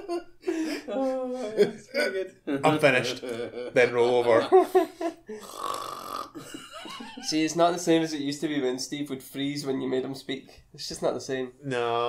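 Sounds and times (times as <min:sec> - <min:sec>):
person burping: 0:05.4 - 0:06.4.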